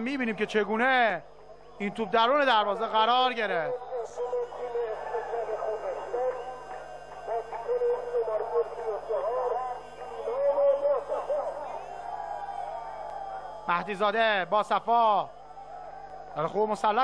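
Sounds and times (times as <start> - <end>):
stadium crowd shouting and chanting: 0.2 - 17.0.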